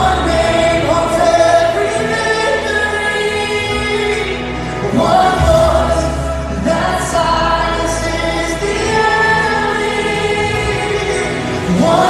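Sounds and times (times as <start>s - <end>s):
band with keyboards and bass: 0.0s - 12.0s
people singing worship song: 0.0s - 12.0s.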